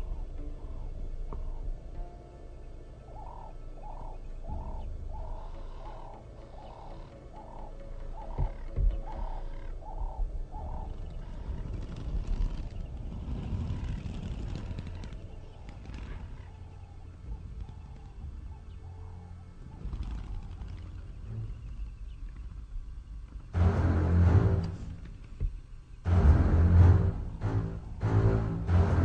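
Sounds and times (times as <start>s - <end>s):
low rumbling noise: 0.0s - 29.0s.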